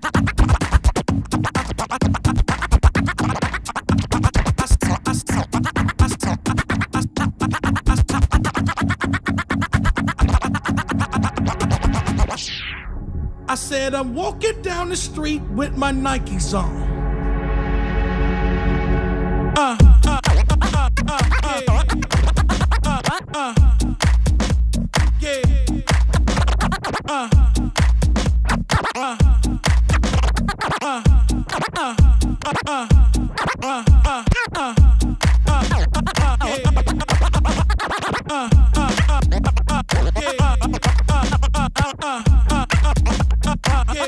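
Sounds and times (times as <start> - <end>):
hip-hop beat with deep bass: 0.0 - 12.6, 19.6 - 44.0
vinyl record scratching: 0.0 - 13.0, 19.8 - 44.0.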